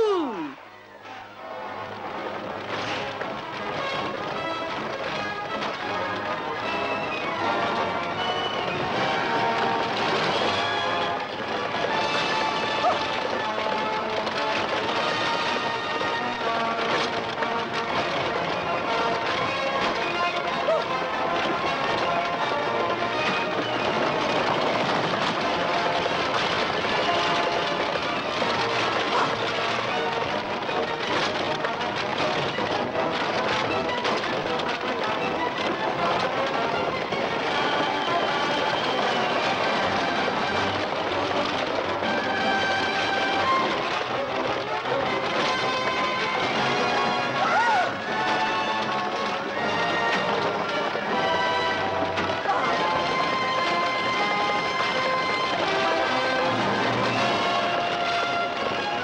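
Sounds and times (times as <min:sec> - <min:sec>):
orchestral film score: 0:00.0 - 0:59.0
stagecoach clatter and rumble: 0:00.2 - 0:59.0.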